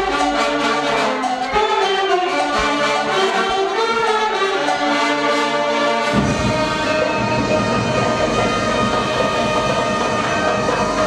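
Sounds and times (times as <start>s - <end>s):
brass marching band chords: 0.0s - 11.0s.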